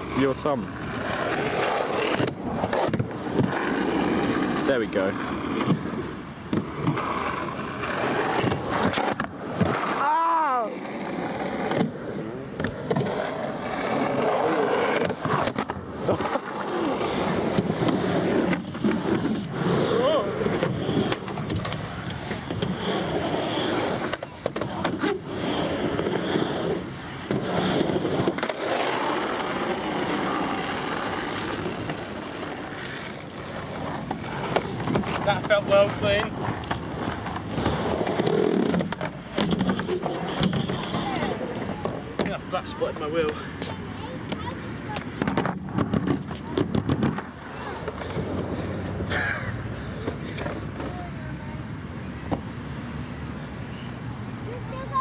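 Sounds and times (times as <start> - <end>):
skateboard wheels rolling: 0.0 - 55.0
skateboard clacks: 0.8 - 51.1
skateboard handling knocks and clicks: 25.9 - 42.4, 43.3 - 49.0.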